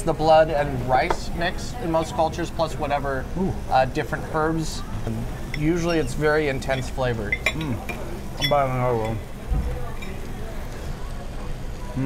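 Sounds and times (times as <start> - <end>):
restaurant background noise: 0.0 - 12.0.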